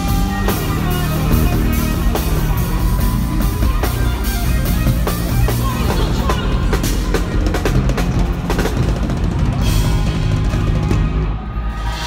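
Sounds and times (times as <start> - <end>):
live band music: 0.0 - 11.9.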